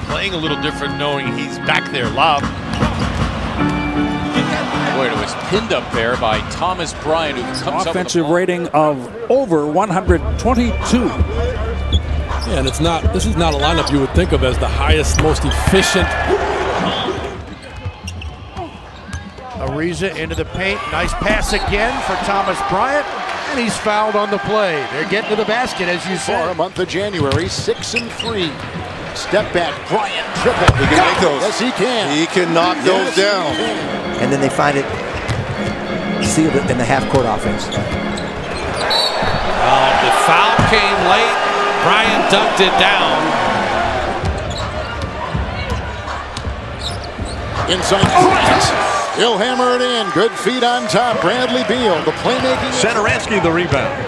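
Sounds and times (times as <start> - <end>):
crowd din: 0.0 - 54.0
low crowd murmur: 33.3 - 49.1
basketball bouncing on court: 35.2 - 36.4, 44.2 - 48.3.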